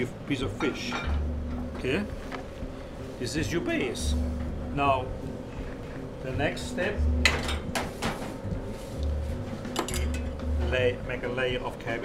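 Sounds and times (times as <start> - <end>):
utensils and dishes clattering: 0.6 - 1.2, 7.2 - 8.4, 9.7 - 10.4
background music with bass: 1.0 - 12.0.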